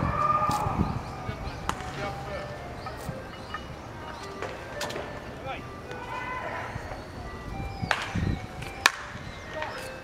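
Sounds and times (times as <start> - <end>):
bat hitting ball crack: 8.8 - 9.1.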